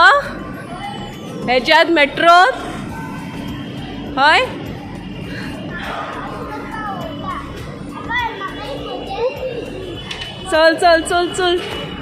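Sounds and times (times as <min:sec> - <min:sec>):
steady hum: 0:00.0 - 0:12.0
child chattering and calling out: 0:05.7 - 0:10.0.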